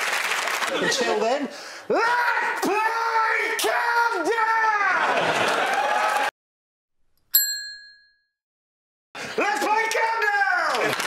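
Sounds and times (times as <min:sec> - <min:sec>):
ding sound effect: 0:07.3 - 0:08.4.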